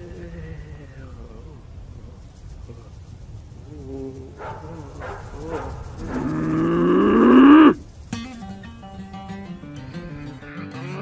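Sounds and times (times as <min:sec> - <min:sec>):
moo-like cry: 0:05.6 - 0:07.8
plucked guitar music: 0:08.1 - 0:11.0.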